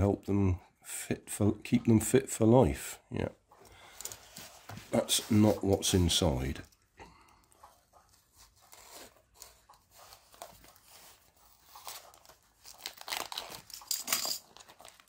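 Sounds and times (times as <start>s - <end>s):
wrapping crinkling and tearing: 8.1s - 15.0s
craft knife slitting wrapping: 8.4s - 15.0s.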